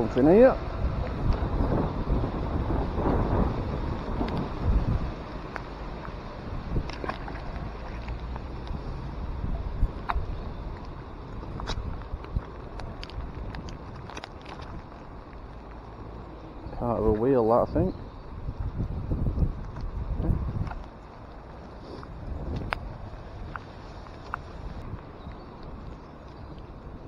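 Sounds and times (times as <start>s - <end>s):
wind buffeting microphone: 0.0s - 27.0s
heavy rain: 0.6s - 9.9s.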